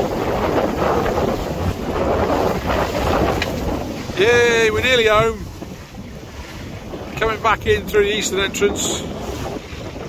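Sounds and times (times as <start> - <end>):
choppy water sloshing along hull: 0.0 - 10.0
wind buffeting the microphone: 0.0 - 10.0.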